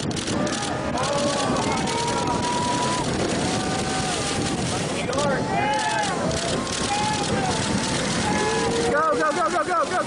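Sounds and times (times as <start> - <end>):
wind and sea noise: 0.0 - 10.0
people yelling: 0.3 - 10.0.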